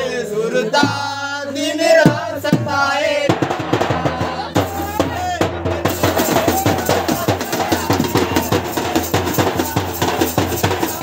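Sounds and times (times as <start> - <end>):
drums beaten with sticks: 0.7 - 11.0
man shouting: 4.5 - 8.8.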